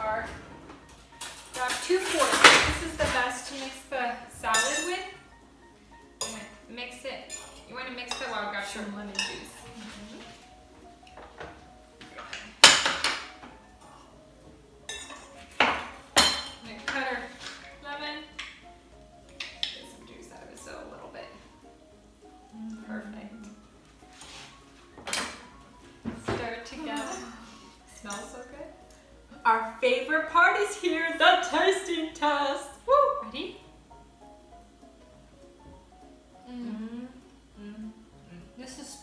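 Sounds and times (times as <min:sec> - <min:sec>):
forks clinking against bowl: 0:01.2 - 0:02.6, 0:04.5 - 0:05.1, 0:07.2 - 0:08.5, 0:09.1 - 0:09.6, 0:14.9 - 0:15.4.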